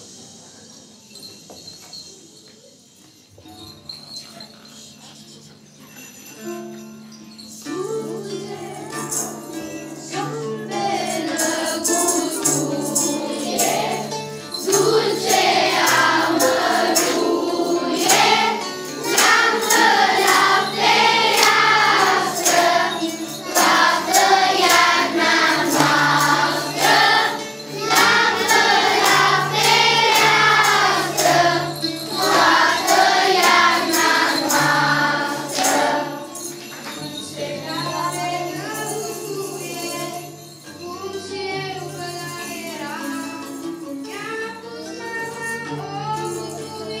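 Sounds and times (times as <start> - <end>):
jingle bells shaken: 0.0 - 47.0
children's choir singing: 7.5 - 47.0
low instrumental accompaniment: 7.8 - 36.2.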